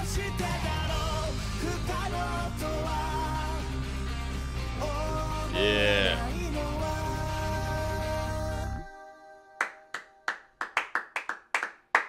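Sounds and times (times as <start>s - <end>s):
hands clapping: 9.6s - 12.0s.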